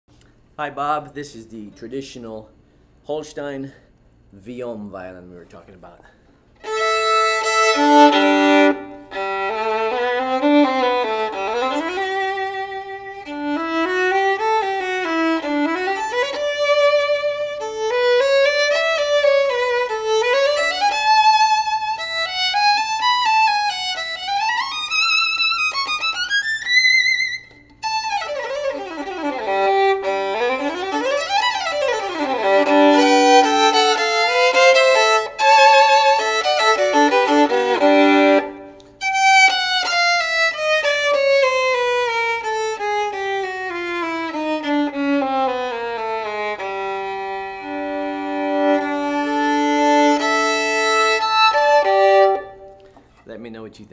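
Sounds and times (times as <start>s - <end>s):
solo bowed violin: 6.6s - 53.1s.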